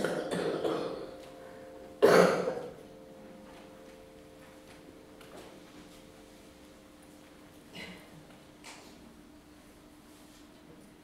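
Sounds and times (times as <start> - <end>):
person coughing: 0.0 - 1.2, 2.0 - 2.8, 7.7 - 8.2.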